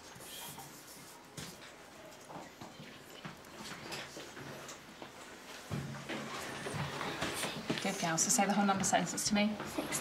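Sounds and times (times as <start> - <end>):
faint classroom background: 0.0 - 10.0.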